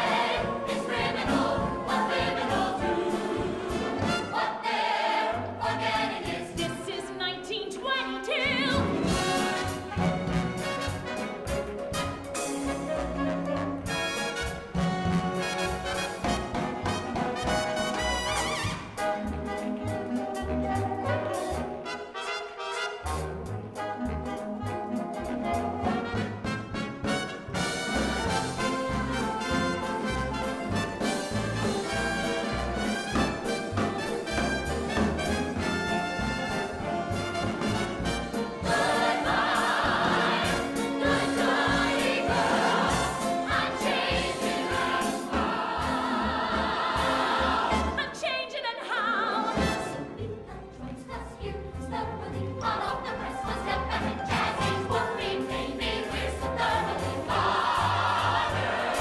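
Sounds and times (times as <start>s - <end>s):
show tune with brass and chorus: 0.0s - 59.0s.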